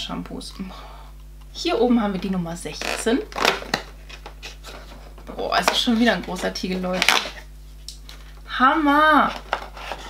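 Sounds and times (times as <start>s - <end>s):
cardboard clicks and scrapes: 9.3s - 10.0s.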